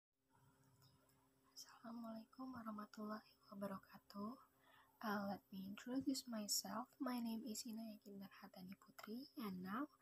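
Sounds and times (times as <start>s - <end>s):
woman speaking: 1.6s - 10.0s.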